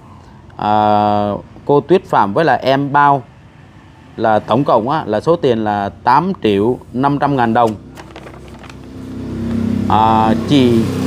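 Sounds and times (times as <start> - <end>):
faint paper clicks: 7.6 - 8.9.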